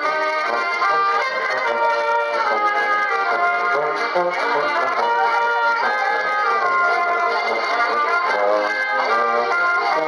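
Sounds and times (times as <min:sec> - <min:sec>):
acoustic guitar: 0:00.0 - 0:10.0
button accordion: 0:00.0 - 0:10.0
clarinet: 0:00.0 - 0:10.0
trumpet: 0:00.0 - 0:10.0
tuba bass line: 0:00.0 - 0:10.0.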